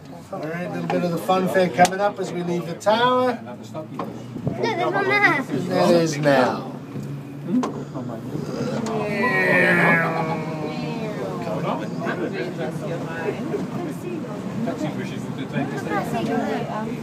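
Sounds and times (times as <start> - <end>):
people chattering indistinctly: 0.0 - 17.0.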